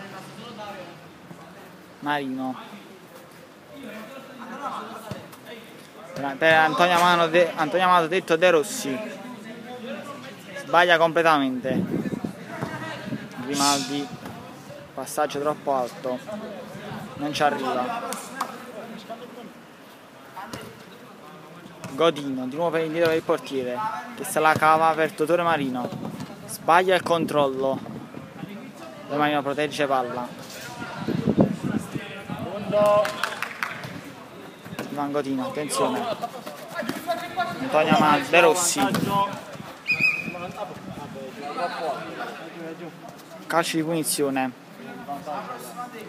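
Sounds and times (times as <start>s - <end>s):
players' voices: 0.0s - 46.0s
football thud: 38.7s - 39.6s.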